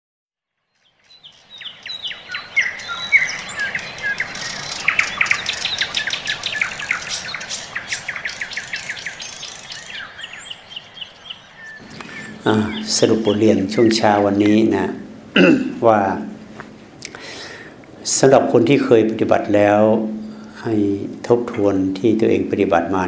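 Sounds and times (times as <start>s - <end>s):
small birds chirping: 0.6s - 15.4s.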